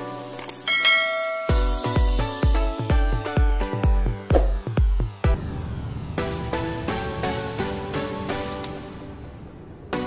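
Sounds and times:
electronic music with heavy bass: 0.0 - 5.4
notification bell chime: 0.7 - 1.9.

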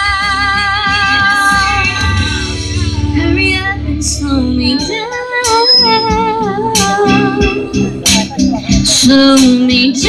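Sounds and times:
backing music: 0.0 - 10.0
woman singing into microphone: 0.0 - 10.0.

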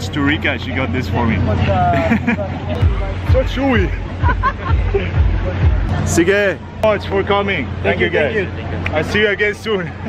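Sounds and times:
background music: 0.0 - 9.2
people chattering: 0.0 - 10.0
man laughing: 1.8 - 2.7, 4.2 - 5.3.

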